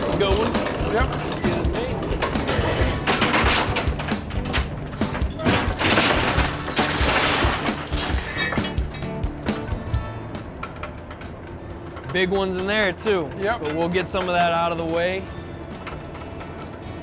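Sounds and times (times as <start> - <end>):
oyster shells clattering on metal: 0.0 - 15.2
background music: 0.0 - 17.0.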